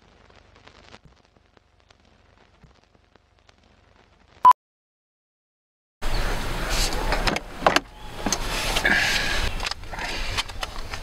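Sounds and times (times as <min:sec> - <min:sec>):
papers rustling: 0:08.2 - 0:11.0.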